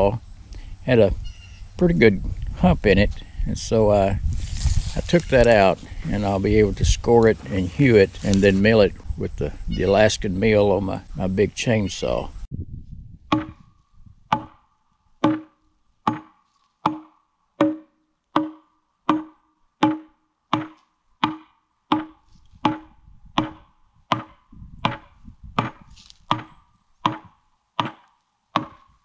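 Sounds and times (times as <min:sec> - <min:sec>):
axe chopping wood: 0:13.3 - 0:13.6, 0:15.2 - 0:28.9.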